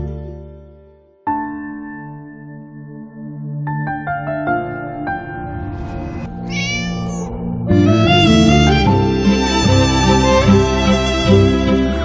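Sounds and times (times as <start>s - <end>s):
soft background music: 0.0s - 12.0s
cat meowing: 6.4s - 7.4s.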